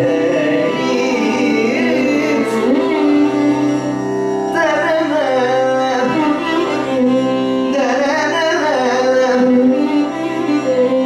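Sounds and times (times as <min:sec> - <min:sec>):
man singing ornamented phrases: 0:00.0 - 0:11.0.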